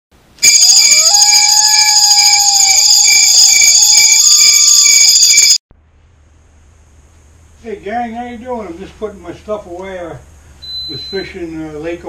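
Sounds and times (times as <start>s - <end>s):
shrill alarm-like tones: 0.4s - 5.6s.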